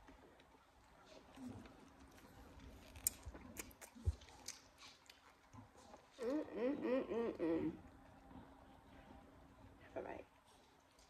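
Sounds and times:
crunchy chewing: 0.0 - 6.5.

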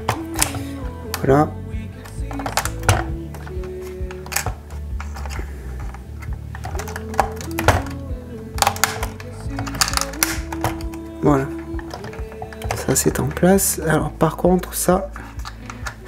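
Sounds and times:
background music: 0.0 - 16.0
model parts clicking into place: 2.0 - 8.0, 8.6 - 11.0.

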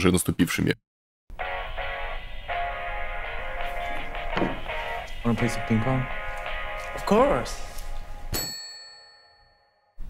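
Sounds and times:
bright bell ding: 8.3 - 9.8.

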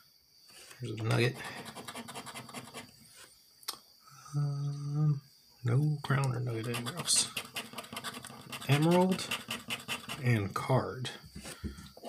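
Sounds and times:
scratcher scraping lottery ticket: 6.4 - 10.4.

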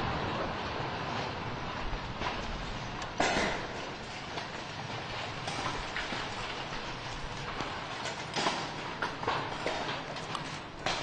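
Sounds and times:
outdoor rushing noise: 0.0 - 11.0.

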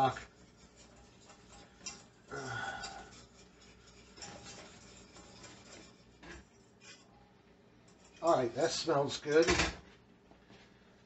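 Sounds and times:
metal utensil scraping saucepan: 0.0 - 7.2, 7.8 - 9.6.

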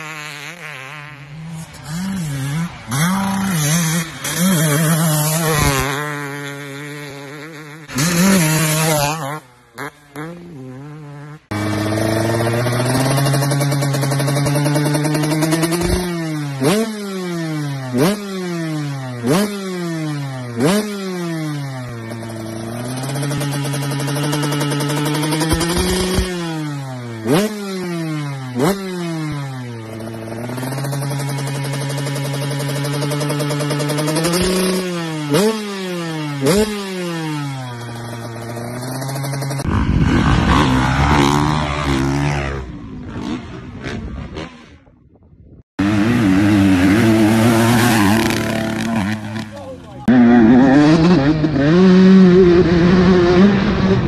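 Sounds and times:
dirt bike engine revving: 0.0 - 45.1, 45.8 - 54.0
loud rough engine: 7.8 - 16.8, 45.8 - 54.0.

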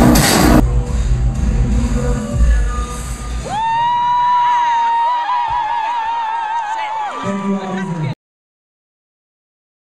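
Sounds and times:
dance-pop backing music: 0.0 - 5.9.

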